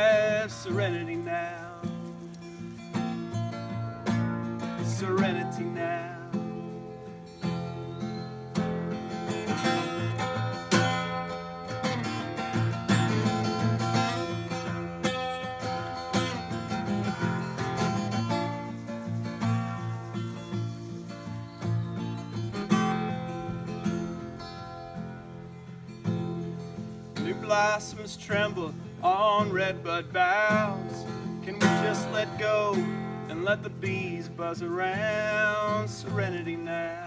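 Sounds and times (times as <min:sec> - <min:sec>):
acoustic guitar strumming: 0:00.0 - 0:37.0.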